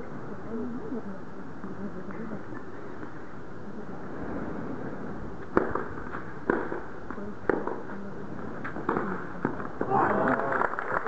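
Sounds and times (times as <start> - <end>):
low crowd murmur: 0.0 - 5.4, 7.0 - 11.0
rackets striking tennis ball: 5.5 - 6.9, 8.6 - 9.7.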